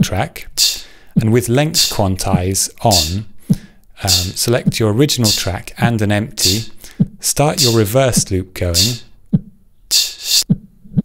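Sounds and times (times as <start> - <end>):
reversed beatbox loop: 0.0 - 5.6, 6.4 - 9.1, 9.9 - 10.6.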